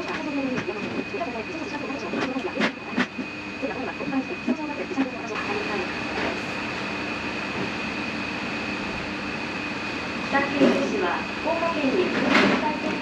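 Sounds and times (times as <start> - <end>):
mechanical hum with high whine: 0.0 - 13.0
voices and clatter: 0.0 - 13.0.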